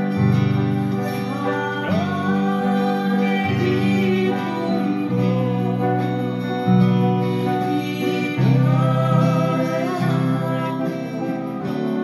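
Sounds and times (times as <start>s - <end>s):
digital piano chords: 0.0s - 12.0s
person singing: 0.0s - 12.0s.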